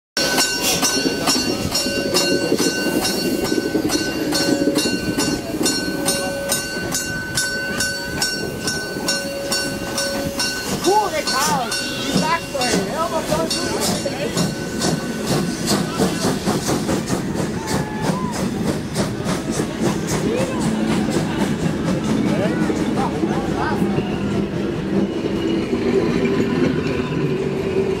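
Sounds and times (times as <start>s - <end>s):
steam locomotive chuffing: 0.2s - 28.0s
train wheels rolling on rails: 0.2s - 28.0s.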